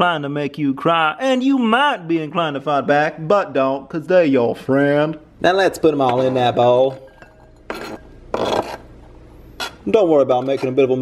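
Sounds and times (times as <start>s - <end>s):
knife scraping cutting board: 7.7s - 11.0s.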